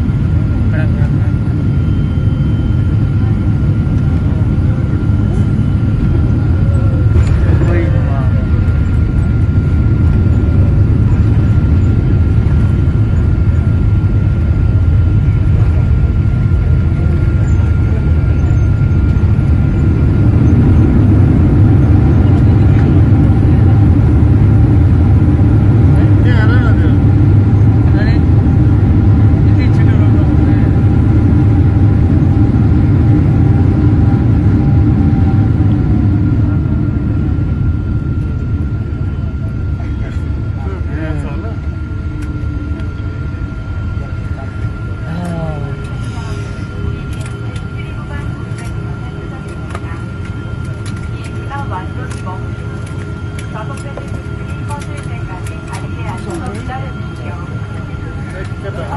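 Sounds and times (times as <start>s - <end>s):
jet cabin low rumble: 0.0s - 58.9s
steady hum: 0.0s - 58.9s.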